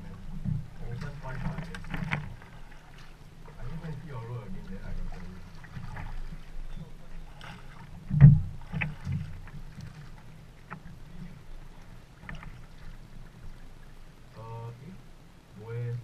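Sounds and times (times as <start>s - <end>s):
paddle strokes splashing: 0.0s - 14.4s
steady low rumble: 0.0s - 16.0s
water washing along boat: 0.0s - 16.0s.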